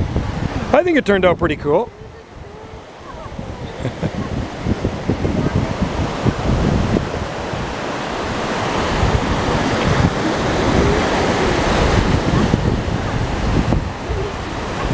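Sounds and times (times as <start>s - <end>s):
surf washing onto beach: 0.0s - 14.9s
wind buffeting microphone: 0.0s - 14.9s.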